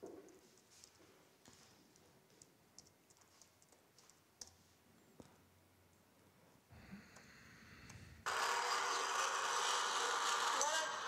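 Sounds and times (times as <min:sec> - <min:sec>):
coil winding machine whirring: 0:08.2 - 0:11.0.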